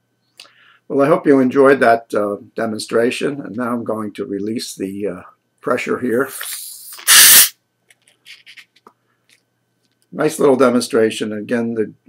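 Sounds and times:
gas hissing from bottle: 6.3s - 7.5s.

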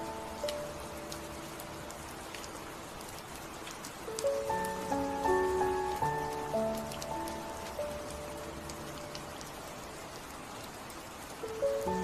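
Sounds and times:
raindrop ticks: 0.0s - 12.0s
steady rain falling: 0.0s - 12.0s
soft piano notes: 3.5s - 12.0s.

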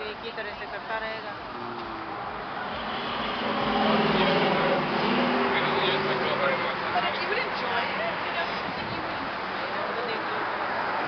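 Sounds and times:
voices: 0.0s - 11.0s
vehicle engine and tyre noise: 0.8s - 11.0s.

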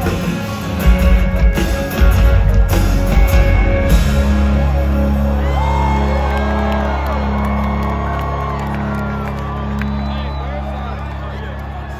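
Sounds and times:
crowd whooping and cheering: 3.1s - 11.9s.

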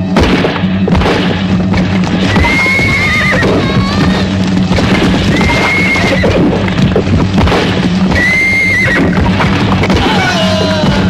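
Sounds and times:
hooves pounding: 0.9s - 11.0s
horse whinnying: 5.2s - 6.5s.

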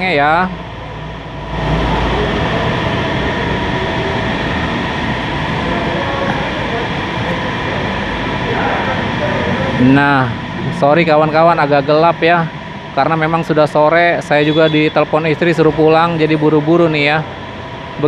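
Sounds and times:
air compressor running: 0.0s - 18.0s.

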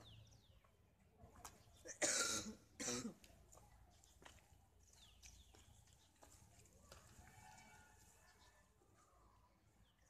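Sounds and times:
person coughing: 1.9s - 3.2s.

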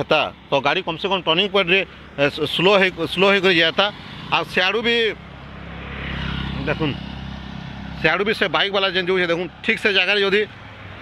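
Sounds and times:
motorcycle engine passing: 1.8s - 11.0s.

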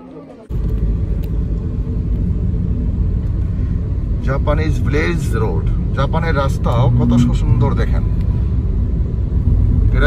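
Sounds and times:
car engine and road noise: 0.4s - 10.0s.

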